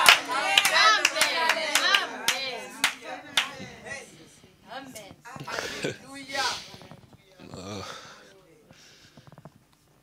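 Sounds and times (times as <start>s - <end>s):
rhythmic hand clapping: 0.0s - 3.6s.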